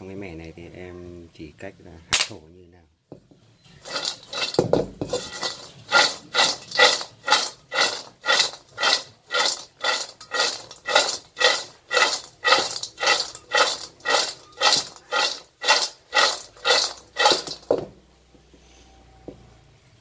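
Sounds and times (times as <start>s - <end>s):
seeds rattling in a metal wok: 3.8s - 17.9s.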